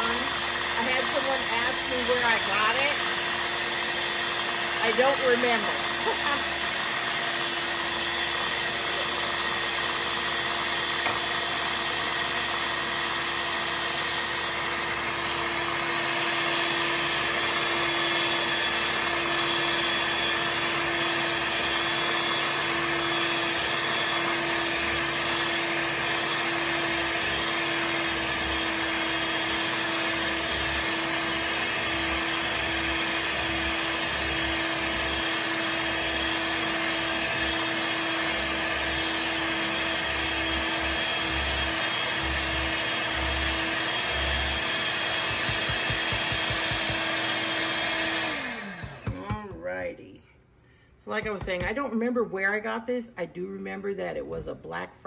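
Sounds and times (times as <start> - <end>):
electric stand mixer whirring: 0.0 - 49.4.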